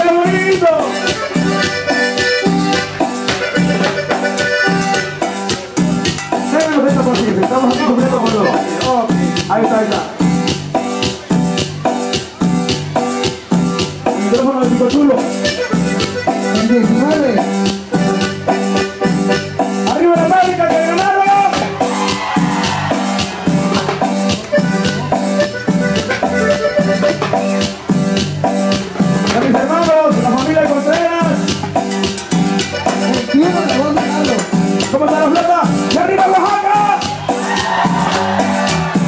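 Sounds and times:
keyboard chords: 0.0s - 39.0s
live band playing dance music: 0.0s - 39.0s
steady drum beat: 0.0s - 39.0s
high short percussion hits: 0.9s - 9.5s, 20.8s - 30.0s.

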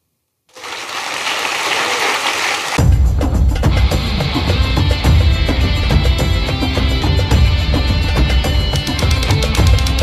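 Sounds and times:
large audience applauding: 0.5s - 2.8s.

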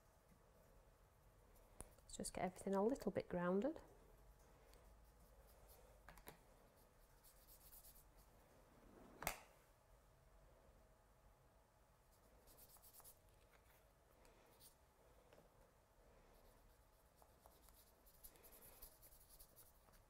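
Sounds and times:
paintbrush scratching on card: 6.8s - 8.3s, 12.4s - 13.2s, 16.4s - 20.0s.

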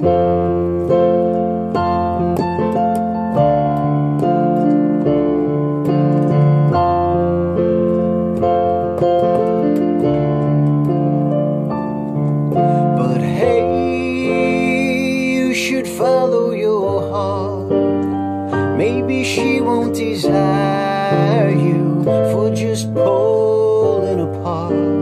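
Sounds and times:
piano-style keyboard chords: 0.0s - 25.0s.

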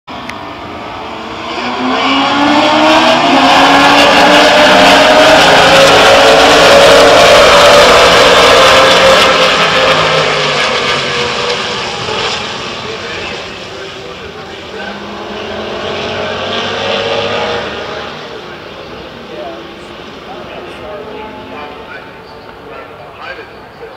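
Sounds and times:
race car engine passing by: 0.2s - 23.6s.

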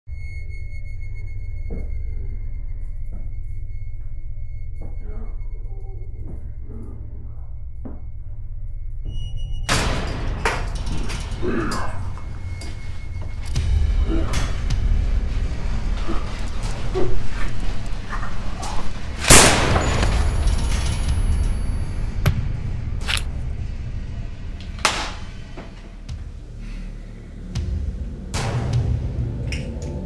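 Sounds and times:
low rumbling drone: 0.2s - 30.0s
big boom: 19.3s - 25.5s.

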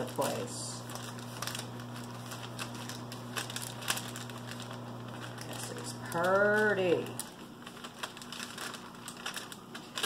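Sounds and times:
parchment paper crinkling: 0.0s - 10.0s.

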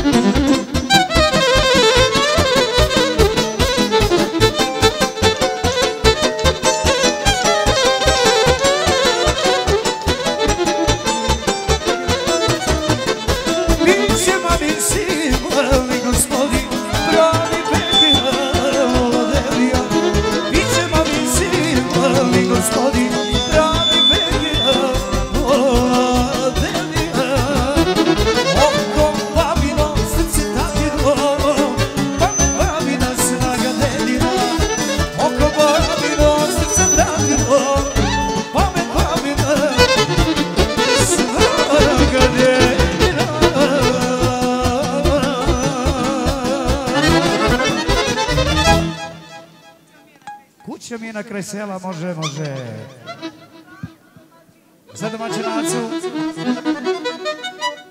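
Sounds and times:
electric violins playing melody: 0.0s - 50.4s, 52.3s - 54.2s, 54.9s - 57.9s
accordion: 0.0s - 57.9s
person singing on a microphone: 13.5s - 48.6s, 55.0s - 57.2s.

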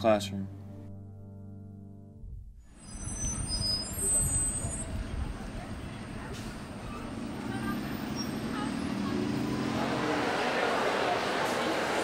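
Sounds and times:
traffic rumble: 2.8s - 12.0s
murmur of voices: 3.8s - 12.0s.

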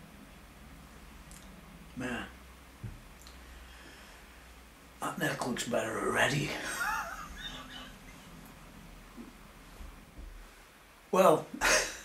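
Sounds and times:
man laughing: 6.5s - 8.3s, 11.6s - 12.0s.

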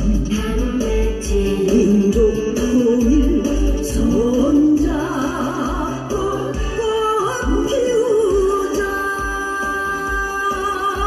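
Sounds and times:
musical accompaniment with bass beat: 0.0s - 11.0s
woman singing into a microphone: 0.0s - 11.0s.

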